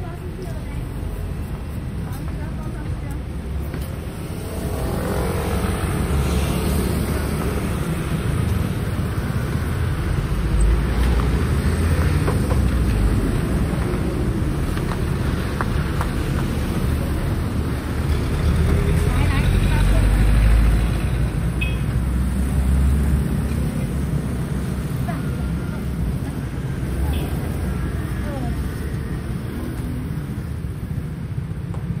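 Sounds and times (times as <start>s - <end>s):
traffic hum: 0.0s - 32.0s
vehicle engine rumble: 0.0s - 32.0s
voices of passers-by: 0.0s - 32.0s.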